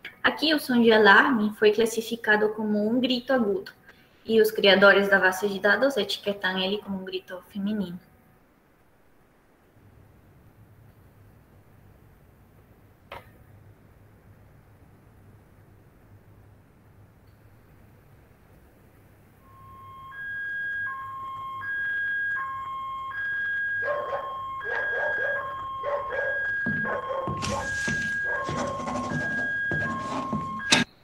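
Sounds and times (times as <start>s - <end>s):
two-tone electronic alarm: 19.4s - 31.0s.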